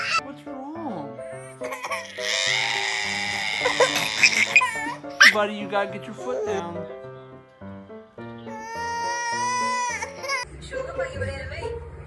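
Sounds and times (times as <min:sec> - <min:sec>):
toddler whining cry: 0:00.0 - 0:00.2, 0:01.6 - 0:05.4, 0:08.5 - 0:10.4
toddler sobbing: 0:01.6 - 0:05.4, 0:08.5 - 0:10.4.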